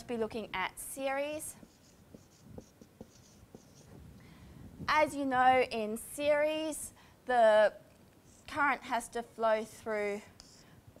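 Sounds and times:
woman speaking: 0.0s - 1.6s, 4.9s - 7.8s, 8.5s - 10.3s
marker squeaking on whiteboard: 1.6s - 4.0s.

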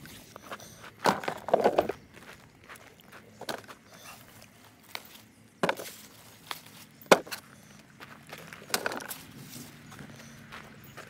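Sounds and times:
footsteps crunching on dry soil: 0.0s - 11.0s.

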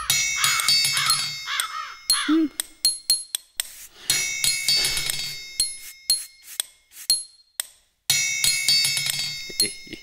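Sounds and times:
cartoon birds cawing: 0.0s - 2.6s
music with high chiming tones: 0.0s - 6.5s, 7.1s - 10.0s.

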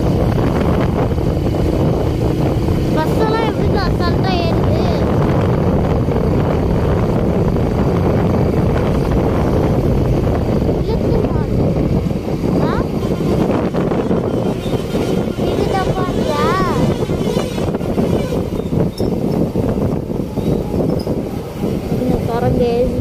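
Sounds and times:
motorbike engine running: 0.0s - 21.2s
wind rush on microphone: 0.0s - 23.0s.

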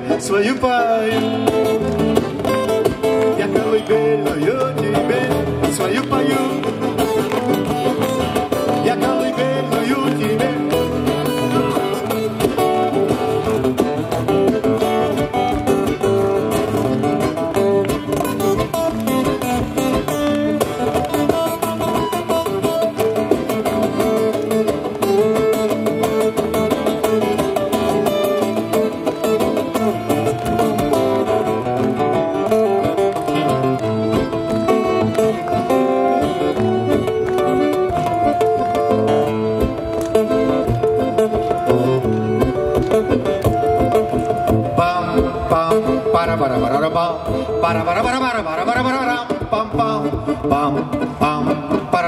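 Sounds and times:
strummed acoustic guitars: 0.0s - 52.0s
accordion playing held notes: 10.5s - 46.2s.

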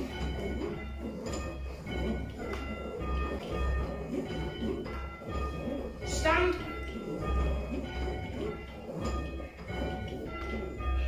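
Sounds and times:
church bells ringing: 0.0s - 11.0s.

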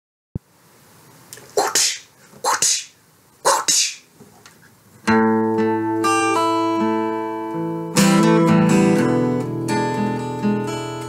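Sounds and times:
person sneezing: 1.5s - 4.1s.

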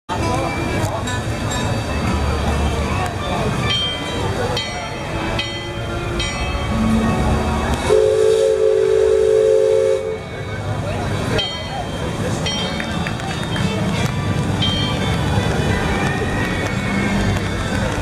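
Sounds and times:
crowd din: 0.1s - 18.0s
steam whistle blowing a chord: 7.8s - 10.4s.

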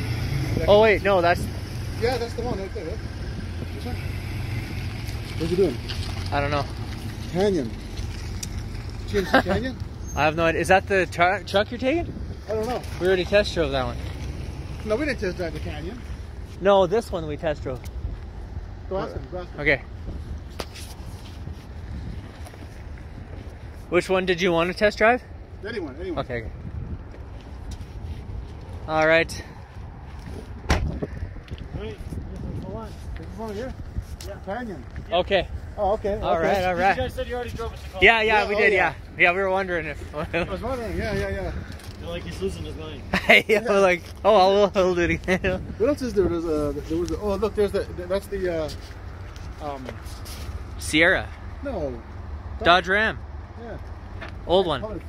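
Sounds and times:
footsteps on asphalt: 4.6s - 10.0s, 20.0s - 23.9s, 26.6s - 28.9s, 29.5s - 36.1s.

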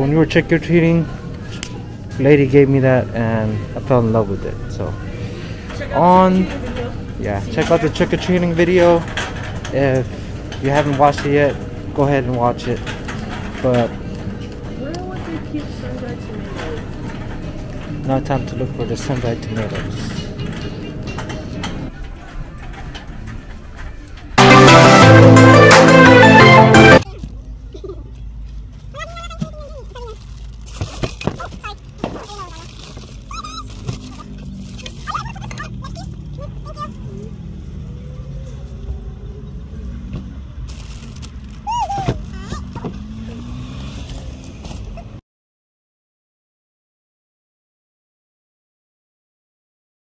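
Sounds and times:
faint voices: 0.0s - 24.4s
faint music: 0.0s - 29.8s
passing traffic: 0.0s - 45.2s
store noise: 0.0s - 45.2s.

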